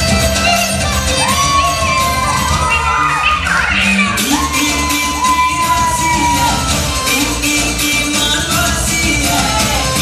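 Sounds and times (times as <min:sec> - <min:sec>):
dance remix music: 0:00.0 - 0:10.0
children shouting and cheering: 0:00.1 - 0:07.4, 0:09.1 - 0:10.0.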